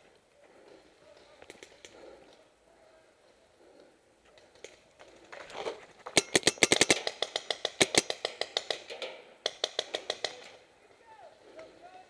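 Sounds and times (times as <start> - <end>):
paintball marker firing rapidly: 6.2 - 10.6.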